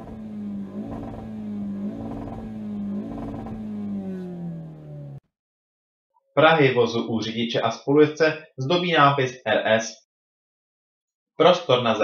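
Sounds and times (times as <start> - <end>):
car engine revving: 0.0 - 5.2.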